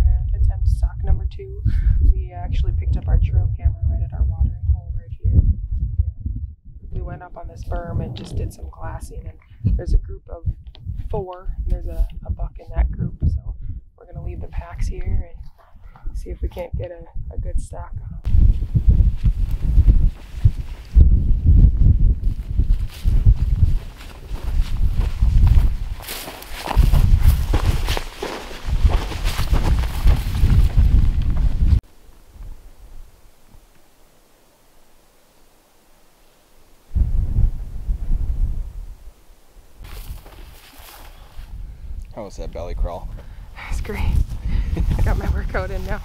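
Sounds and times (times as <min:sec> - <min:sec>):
wind buffeting microphone: 0:00.0 - 0:33.2, 0:36.9 - 0:39.2, 0:39.8 - 0:46.0
footsteps through dry grass: 0:18.3 - 0:31.8, 0:39.8 - 0:41.6.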